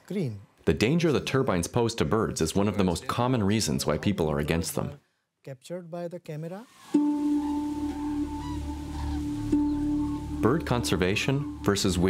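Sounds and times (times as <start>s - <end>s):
higher tone: 7.0s - 12.0s
low drone tone: 7.1s - 12.0s
deep hum: 7.3s - 12.0s.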